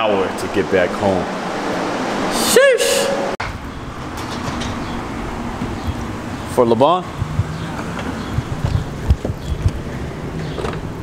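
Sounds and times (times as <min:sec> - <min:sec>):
distant traffic rumble: 0:00.0 - 0:11.0.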